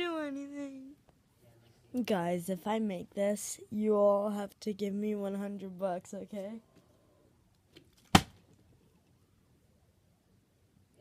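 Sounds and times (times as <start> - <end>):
plastic bottle landing on wooden floor: 8.0 - 8.4.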